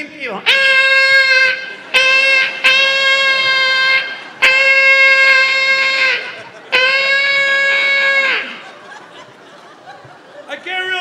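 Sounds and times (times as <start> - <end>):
one-note horn blasts: 0.4 - 8.6.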